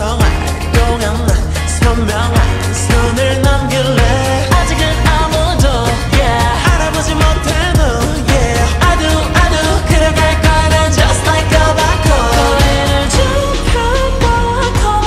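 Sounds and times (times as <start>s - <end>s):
deep bass: 0.0s - 15.0s
woman singing over a beat: 0.0s - 15.0s.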